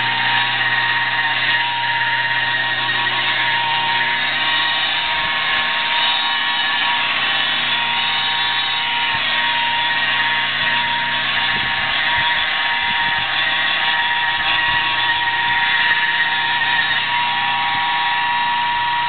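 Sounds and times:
electric polisher motor whine: 0:00.0 - 0:19.0.

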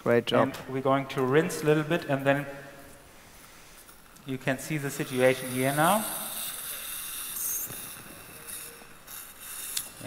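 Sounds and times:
suction tip hissing: 0:03.4 - 0:10.0.

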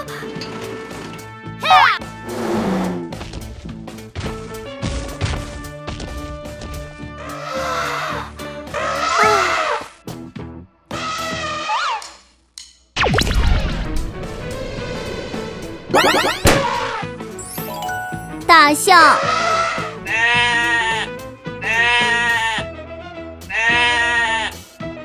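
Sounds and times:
zap effect: 0:13.0 - 0:17.0
cartoon background music: 0:13.0 - 0:22.6
bleat-like animal calls: 0:19.2 - 0:22.6, 0:23.5 - 0:24.7.

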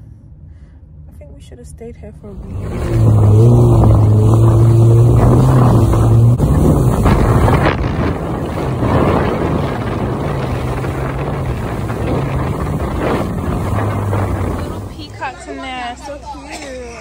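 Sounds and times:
jet ski engine: 0:02.2 - 0:17.0
water spray rushing: 0:02.3 - 0:15.4
wind buffeting microphone: 0:02.3 - 0:16.2.

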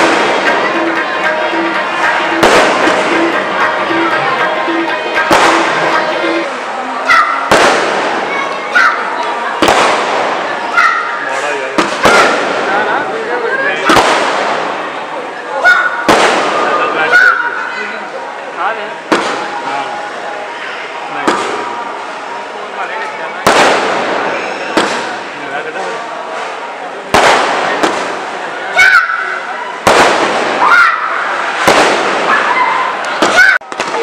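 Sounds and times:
firework shells bursting: 0:29.8 - 0:30.6, 0:31.5 - 0:32.3.

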